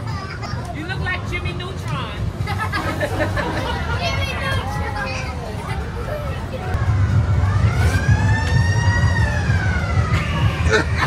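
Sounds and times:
siren-like wail: 0:07.1 - 0:11.0.

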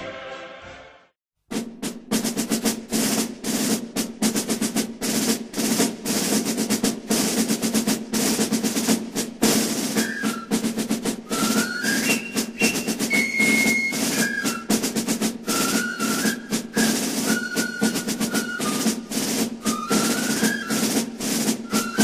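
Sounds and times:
snare drum rolls: 0:01.5 - 0:22.0.

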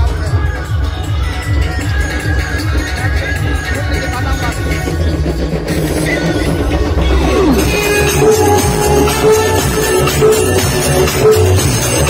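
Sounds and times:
music with heavy bass line: 0:00.0 - 0:12.0.

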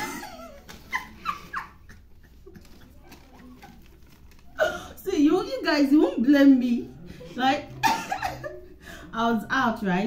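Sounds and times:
paper signs rustling: 0:00.1 - 0:04.6.

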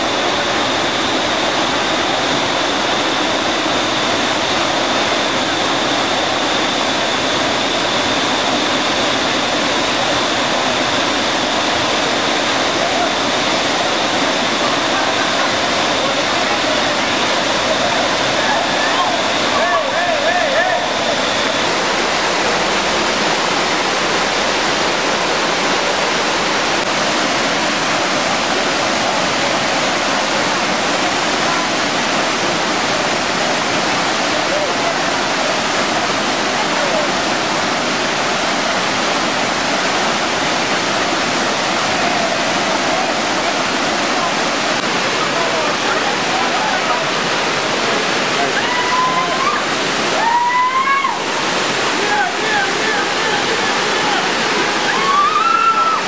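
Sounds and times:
waterfall roaring: 0:00.0 - 0:56.0
faint voices of people: 0:12.2 - 0:21.8, 0:28.0 - 0:38.4, 0:41.0 - 0:51.3, 0:51.9 - 0:56.0.

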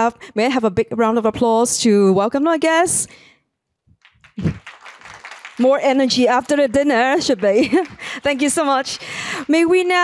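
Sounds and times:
light applause: 0:04.0 - 0:10.0.

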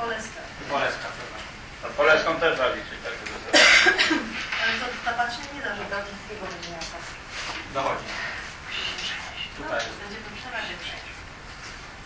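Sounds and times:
loud cough: 0:03.5 - 0:04.4.

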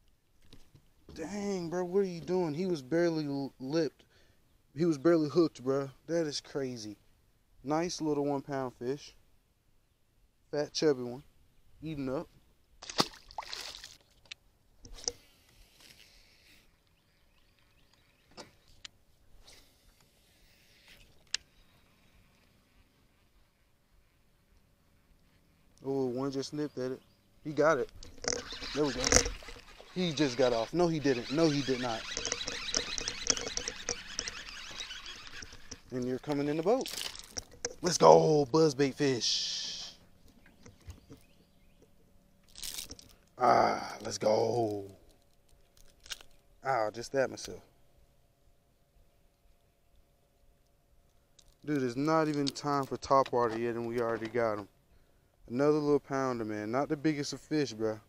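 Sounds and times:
fish splashing into water: 0:12.8 - 0:14.1
faint clicks and ticks: 0:27.8 - 0:37.8
faint clicks and knocks: 0:32.0 - 0:36.0.

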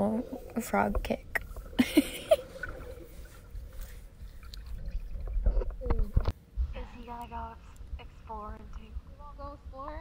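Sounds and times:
underwater clicks and gurgles: 0:00.2 - 0:06.4.

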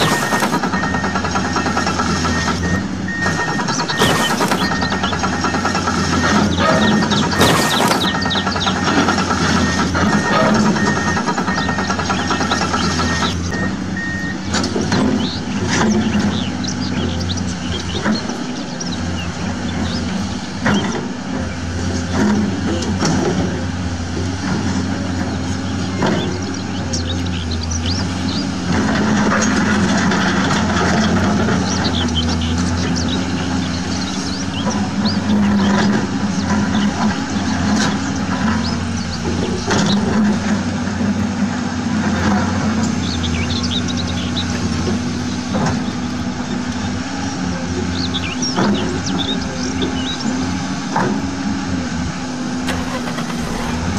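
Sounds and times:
excavator diesel engine running: 0:00.0 - 0:53.9.

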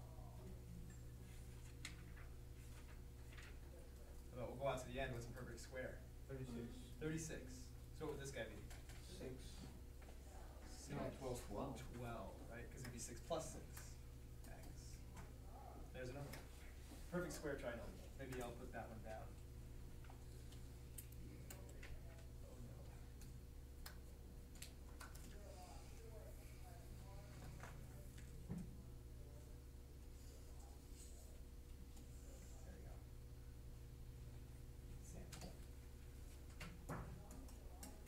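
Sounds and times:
low room hum: 0:00.0 - 0:38.0
faint clicks and taps: 0:18.0 - 0:25.4.

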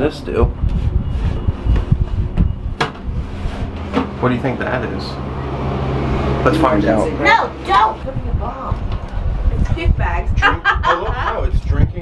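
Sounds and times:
low rumble of breeze: 0:00.0 - 0:12.0.

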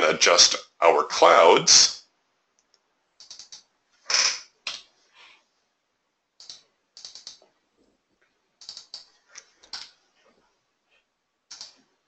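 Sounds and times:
keyboard and mouse clicking: 0:02.6 - 0:04.9, 0:06.4 - 0:07.5, 0:08.6 - 0:10.0, 0:11.5 - 0:11.9.

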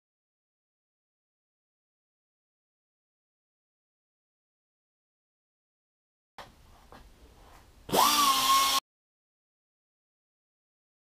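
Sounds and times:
air cut-off tool whine: 0:07.9 - 0:08.8.

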